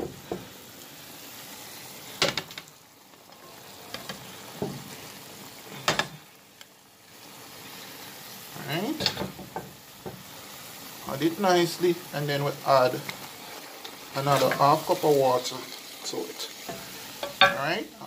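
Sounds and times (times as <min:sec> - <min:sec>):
stew boiling in a pot: 0:00.0 - 0:18.0.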